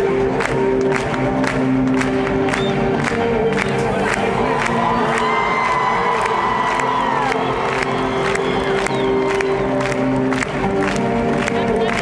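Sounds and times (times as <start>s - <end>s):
crowd cheering: 2.4s - 12.0s.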